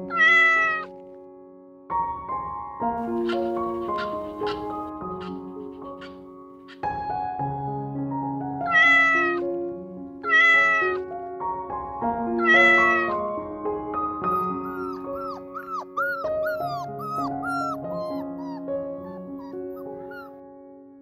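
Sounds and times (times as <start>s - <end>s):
cat meowing: 0.0s - 0.9s, 8.6s - 9.5s, 10.2s - 11.1s, 12.4s - 13.3s, 14.3s - 20.3s
soft background music: 0.0s - 21.0s
puppy whimpering: 3.1s - 6.2s, 12.4s - 13.2s, 14.3s - 20.4s.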